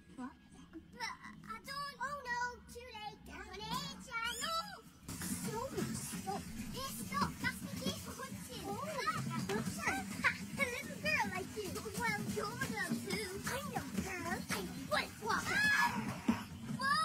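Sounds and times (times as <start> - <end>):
girls talking excitedly: 0.9 - 17.0.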